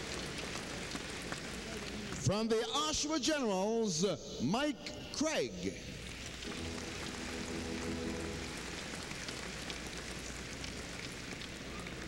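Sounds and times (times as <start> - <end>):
crowd applauding: 0.0 - 2.3, 6.2 - 12.0
low held musical chord: 6.5 - 10.0.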